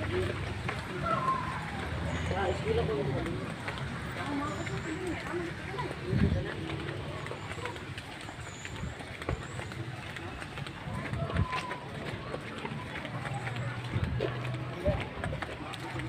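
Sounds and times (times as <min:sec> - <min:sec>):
footsteps on concrete street: 0:00.0 - 0:16.0
indistinct voices: 0:00.0 - 0:16.0.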